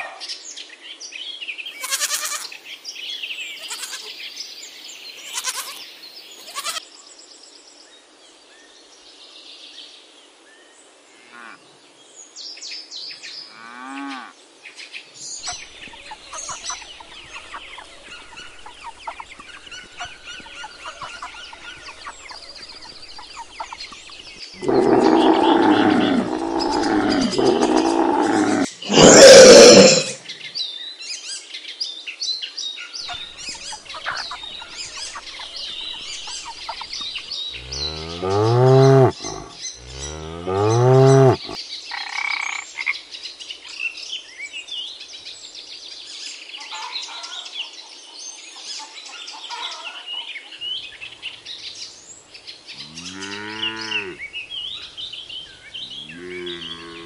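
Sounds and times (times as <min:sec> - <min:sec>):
faint chirping: 0:15.4 - 0:30.2, 0:33.1 - 0:41.6
loud breathy animal burst: 0:24.6 - 0:30.2
low animal calls: 0:24.6 - 0:30.2, 0:37.5 - 0:41.6.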